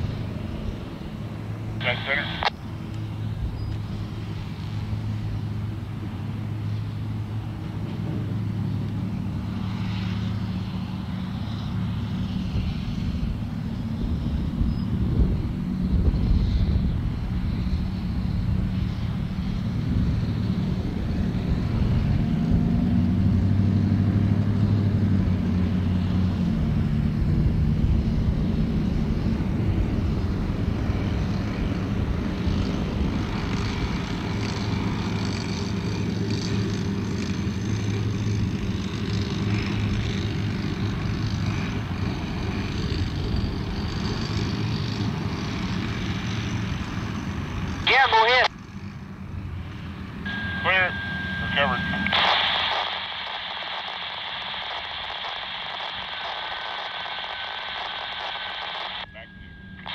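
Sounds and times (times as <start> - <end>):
motor hum with propeller tones: 0.0 - 59.9.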